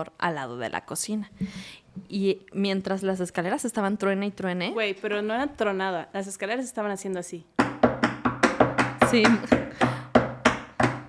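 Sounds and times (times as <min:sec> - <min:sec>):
sharp knocks: 0:07.6 - 0:11.0.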